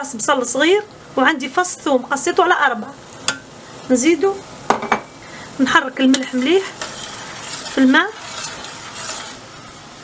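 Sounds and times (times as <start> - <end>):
hiss of heating water: 0.0 - 10.0
metal spoon stirring in saucepan: 5.7 - 9.7.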